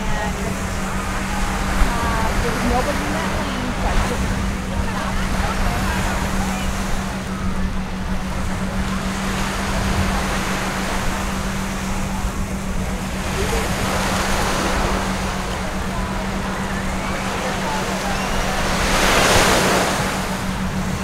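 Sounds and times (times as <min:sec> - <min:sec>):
steady low hum: 0:00.0 - 0:21.0
surf washing onto beach: 0:00.0 - 0:21.0
wind buffeting microphone: 0:00.0 - 0:21.0.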